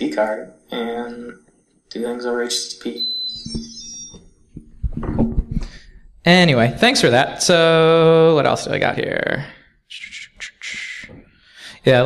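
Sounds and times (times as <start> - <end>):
high electronic beeps: 2.8 - 4.5.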